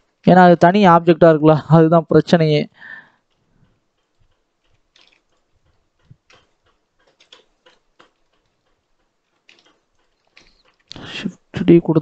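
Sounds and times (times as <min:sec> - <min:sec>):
mouse wheel scrolling clicks: 0:03.2 - 0:11.0
keyboard key clicks: 0:06.0 - 0:08.5.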